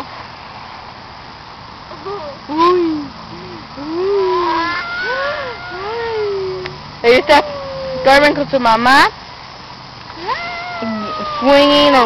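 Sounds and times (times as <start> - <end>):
outdoor playground hush: 0.0 - 12.0
child's high-pitched squeal: 3.8 - 8.4, 10.2 - 12.0.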